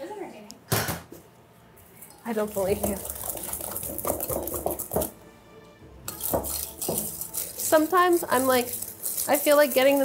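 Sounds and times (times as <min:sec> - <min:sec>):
wire whisk clattering in metal bowl: 0:02.5 - 0:05.1, 0:06.1 - 0:10.0.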